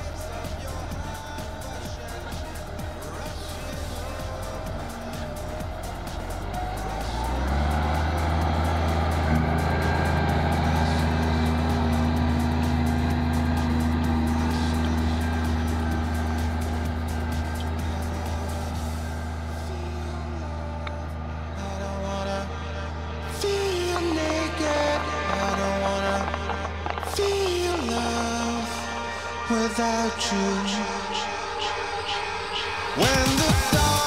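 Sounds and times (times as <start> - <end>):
tractor engine under load: 0.0 - 34.0.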